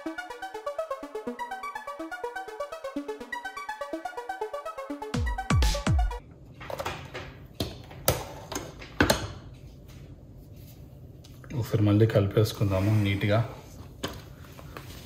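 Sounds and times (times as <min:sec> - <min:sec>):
electronic music: 0:00.0 - 0:06.2.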